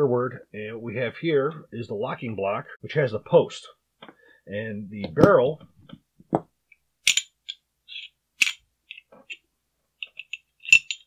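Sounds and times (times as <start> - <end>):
pistol parts clicking and clinking: 7.0 - 9.4, 10.0 - 11.0.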